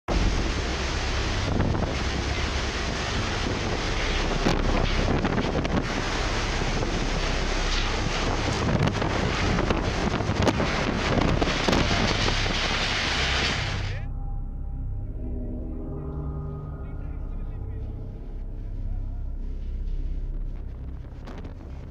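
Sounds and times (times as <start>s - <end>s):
driving rain: 0.1s - 14.0s, 18.6s - 21.9s
storm wind buffeting microphone: 0.1s - 14.0s, 17.0s - 21.9s.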